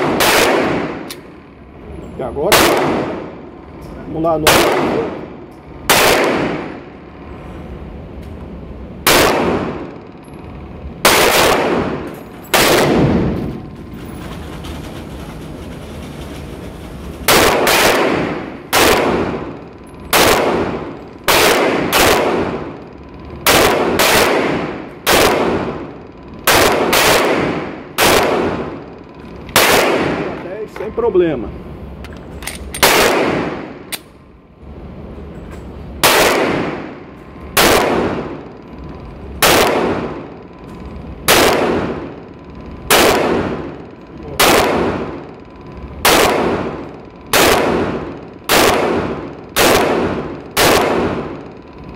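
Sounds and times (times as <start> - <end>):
pistol shots ringing: 0.0 - 1.4, 2.5 - 3.4, 4.4 - 6.9, 9.0 - 10.4, 11.0 - 13.6, 17.3 - 30.4, 32.6 - 34.0, 36.0 - 38.6, 39.4 - 40.6, 41.2 - 51.7.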